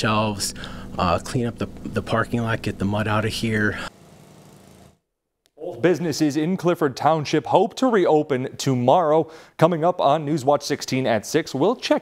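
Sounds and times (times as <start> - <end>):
man's voice: 0.0 - 3.9, 5.6 - 12.0
outdoor background noise with hum: 0.0 - 3.9.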